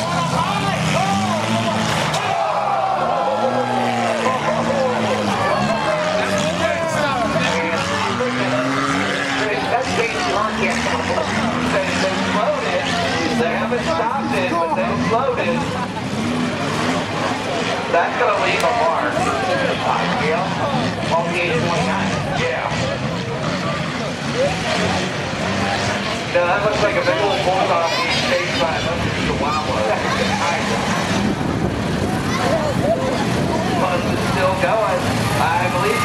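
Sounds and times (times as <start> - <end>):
race car engines revving: 0.0 - 36.0
voices talking: 0.0 - 36.0.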